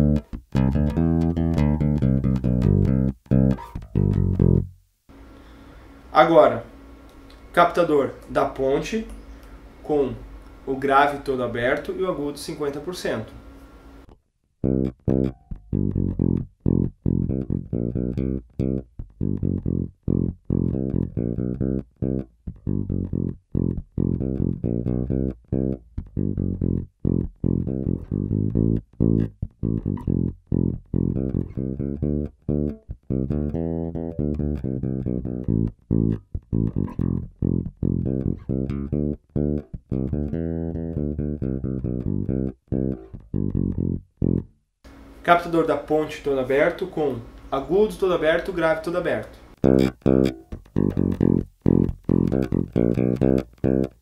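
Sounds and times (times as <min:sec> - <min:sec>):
electric bass bassline: 0:00.0 - 0:04.8, 0:14.6 - 0:44.6, 0:49.6 - 0:54.0.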